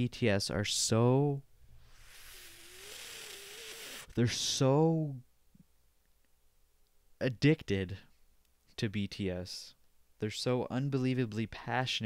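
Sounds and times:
person breathing in: 0:01.7 - 0:03.0.

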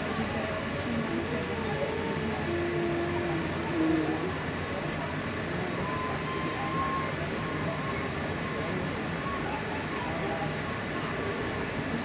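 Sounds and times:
trolleybus interior rumble: 0:00.0 - 0:12.0
faint thin whine: 0:05.6 - 0:10.1.

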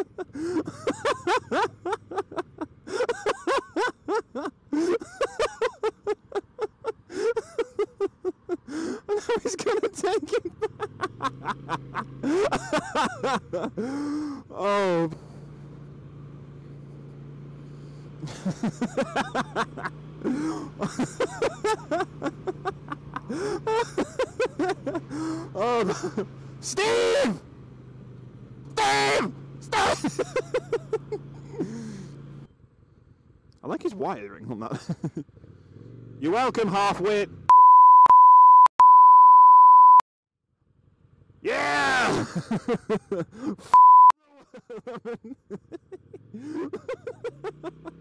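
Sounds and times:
person laughing loudly: 0:00.0 - 0:15.0, 0:18.2 - 0:27.2, 0:28.8 - 0:32.1, 0:34.7 - 0:35.3, 0:41.6 - 0:48.0
motorcycle engine cruising: 0:00.0 - 0:37.5, 0:40.5 - 0:43.7, 0:44.4 - 0:48.0
censor bleep tone: 0:37.5 - 0:40.0, 0:43.7 - 0:44.2.

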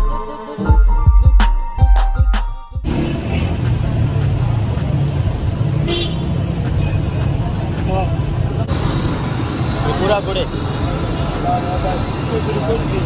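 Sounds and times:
traffic rumble: 0:02.8 - 0:13.0
car horns tooting: 0:05.8 - 0:07.2.

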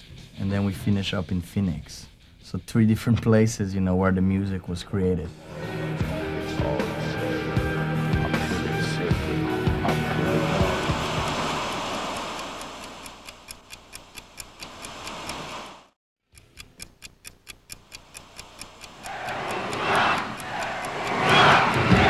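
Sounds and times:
rock music: 0:05.4 - 0:11.6
rapid even ticking: 0:09.1 - 0:22.0
rushing noise: 0:09.8 - 0:13.3, 0:18.8 - 0:22.0.

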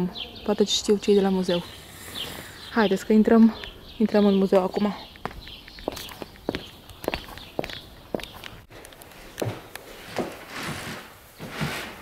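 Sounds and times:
footsteps on concrete path: 0:03.3 - 0:10.5.

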